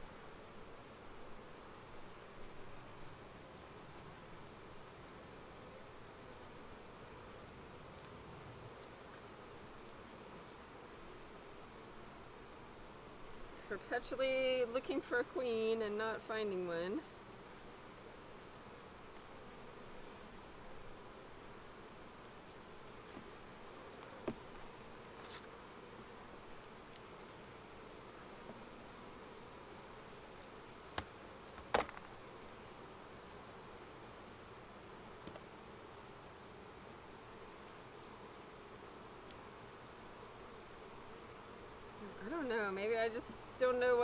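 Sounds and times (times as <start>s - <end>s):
honeybee colony humming: 0.0s - 44.0s.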